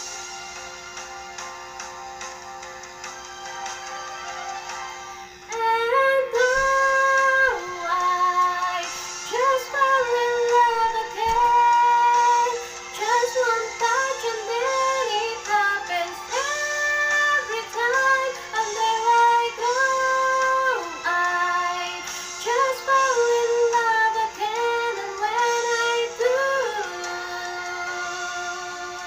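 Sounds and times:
music accompaniment: 0.0s - 29.0s
woman singing ballad: 5.5s - 29.0s.

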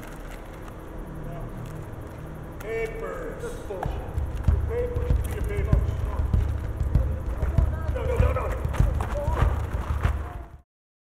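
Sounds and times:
voices: 0.0s - 10.6s
dull low thuds: 3.8s - 10.6s.

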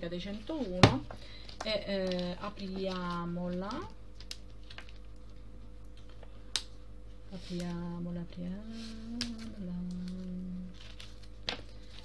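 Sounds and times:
woman humming: 7.6s - 10.9s.

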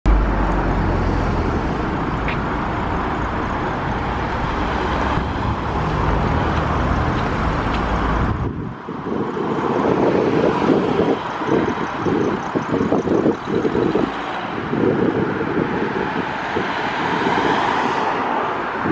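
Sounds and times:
car approaching: 0.1s - 17.7s
vehicles driving past: 0.1s - 18.9s.

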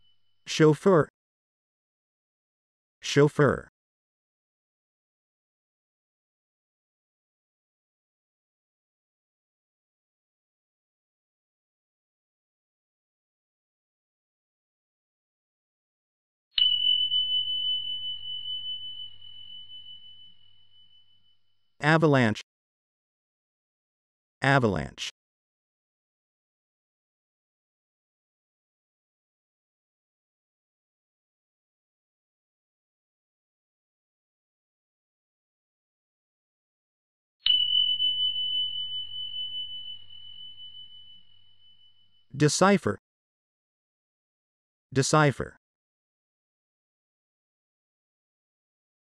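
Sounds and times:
bell-like ding: 16.6s - 21.2s, 37.4s - 42.3s.

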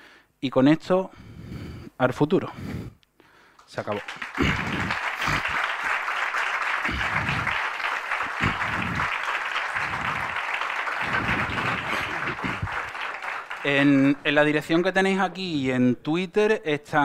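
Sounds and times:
audience clapping: 3.6s - 15.1s
person speaking: 13.6s - 16.1s.

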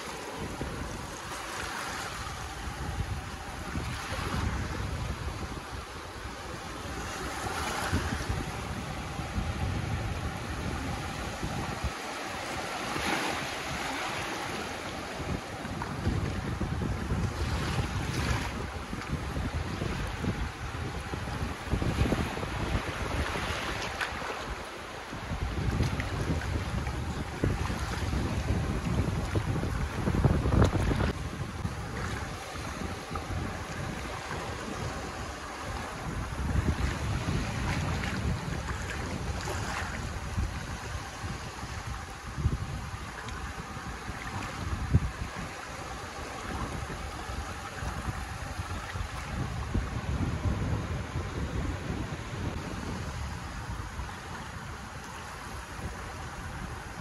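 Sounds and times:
small waves breaking on shore: 0.0s - 57.0s
wind rumbling on microphone: 0.0s - 57.0s.

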